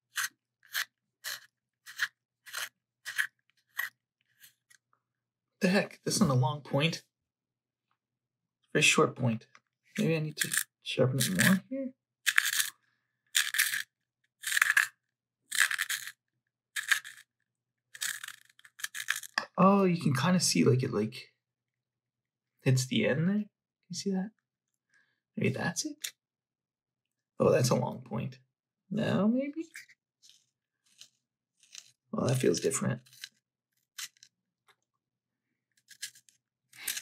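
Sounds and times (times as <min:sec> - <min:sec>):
sharpener blade shaving pencil: 0:00.0 - 0:04.8, 0:10.4 - 0:11.6, 0:12.3 - 0:12.7, 0:13.4 - 0:16.2, 0:16.8 - 0:17.3, 0:17.9 - 0:19.4, 0:29.7 - 0:32.0, 0:33.0 - 0:34.3, 0:35.8 - 0:37.0.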